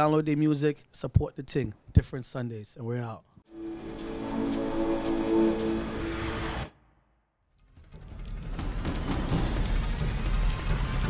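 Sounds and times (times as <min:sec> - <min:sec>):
sustained chord: 0:03.5 - 0:06.8
thin high whine: 0:03.5 - 0:06.8.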